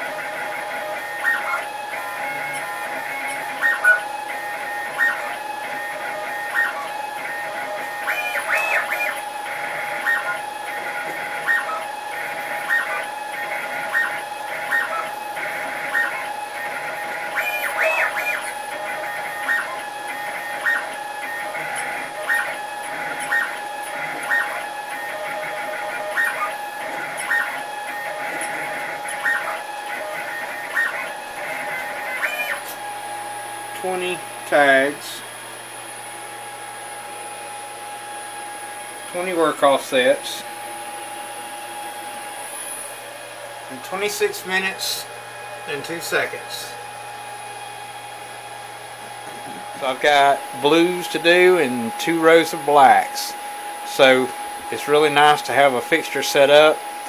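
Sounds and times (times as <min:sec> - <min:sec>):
stepper motors chirping: 0:00.0 - 0:37.2, 0:38.0 - 0:57.0
spindle whining: 0:00.0 - 0:57.0.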